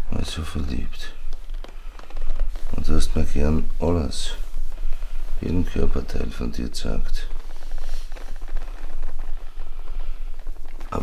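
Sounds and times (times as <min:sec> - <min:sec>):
clothing rustling: 0:00.0 - 0:11.0
steady low hum: 0:00.0 - 0:11.0.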